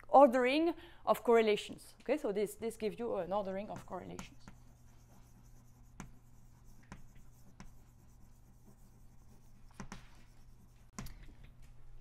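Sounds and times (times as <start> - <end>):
chalk tapping and scratching: 3.6 - 11.0.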